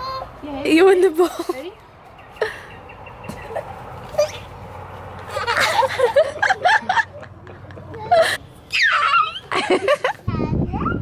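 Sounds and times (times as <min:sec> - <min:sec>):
laughter: 0:05.3 - 0:08.4, 0:09.5 - 0:10.2.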